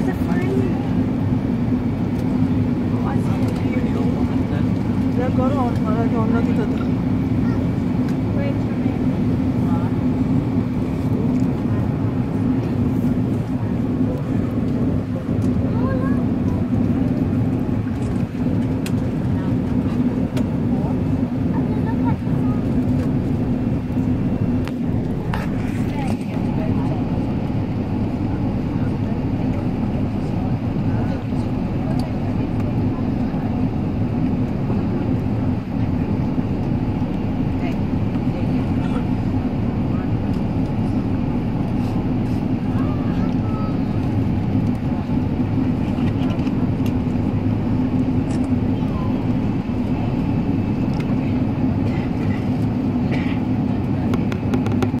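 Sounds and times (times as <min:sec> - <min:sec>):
jet cabin engine rumble: 0:00.0 - 0:55.0.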